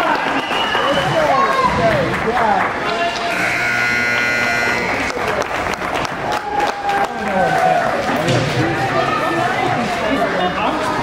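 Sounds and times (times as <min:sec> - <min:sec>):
buzzer horn: 0:03.1 - 0:05.3.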